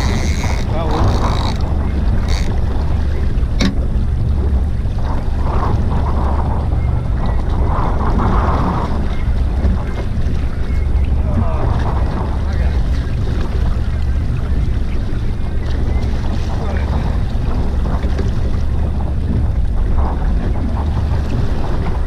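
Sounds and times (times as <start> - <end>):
water washing against boat hull: 0.0 - 22.0
wind rumbling on microphone: 0.0 - 22.0.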